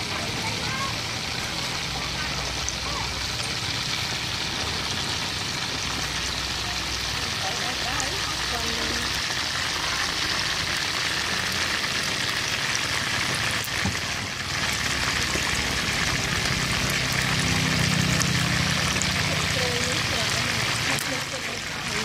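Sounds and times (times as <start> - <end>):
chicken deep-frying in hot oil: 0.0 - 22.0.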